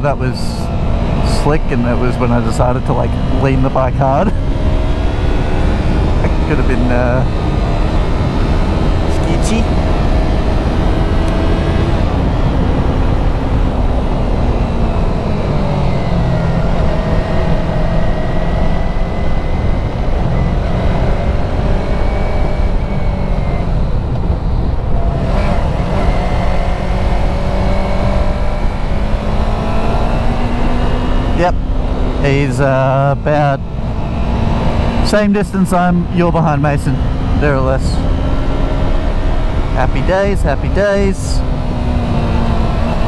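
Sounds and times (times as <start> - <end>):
wind rumble on microphone: 0.0 - 32.3
motorcycle engine running: 0.0 - 43.0.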